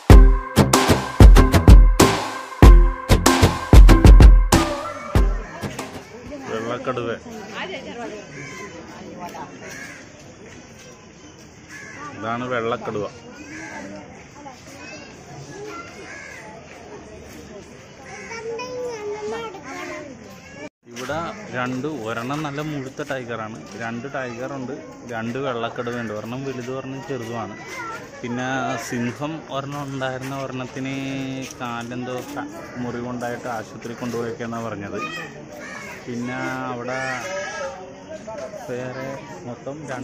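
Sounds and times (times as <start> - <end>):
bird calling: 4.4 - 6.2
background chatter of voices: 4.8 - 40.0.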